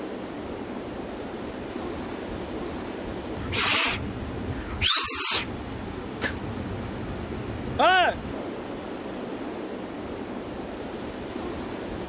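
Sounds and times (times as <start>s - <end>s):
sea surf washing on beach: 0.0s - 12.0s
bursts of hiss: 3.4s - 4.0s, 4.8s - 5.5s.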